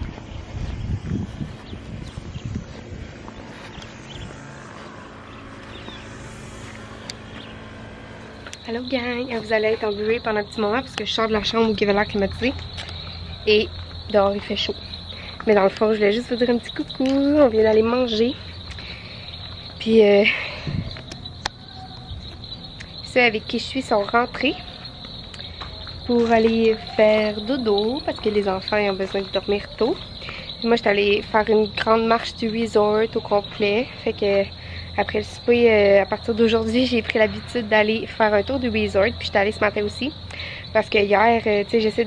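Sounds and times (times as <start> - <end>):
crickets trilling: 0.0 - 42.0.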